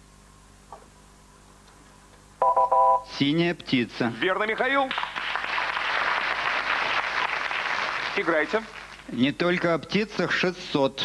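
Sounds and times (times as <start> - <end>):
game show buzzer beep: 2.4 - 3.2.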